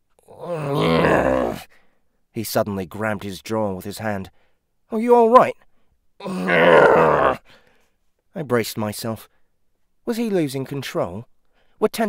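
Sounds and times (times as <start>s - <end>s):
man groaning in pain: 0.2s - 1.6s, 6.2s - 7.4s.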